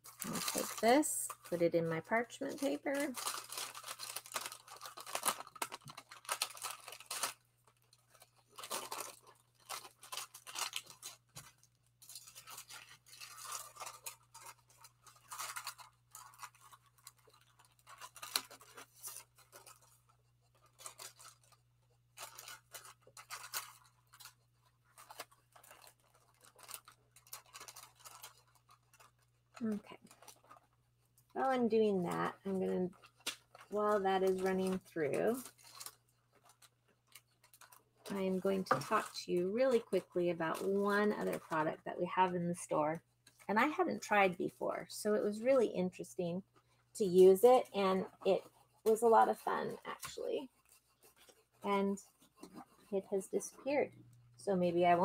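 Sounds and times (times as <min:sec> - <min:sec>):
paper and card rustling: 0:00.0 - 0:42.3, 0:46.5 - 0:54.2.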